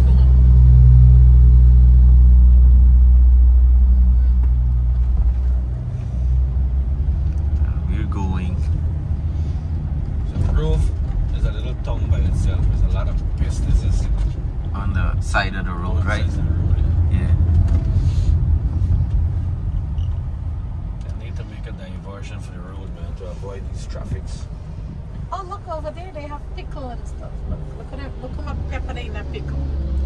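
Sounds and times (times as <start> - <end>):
car engine and road rumble: 0.0 - 30.0.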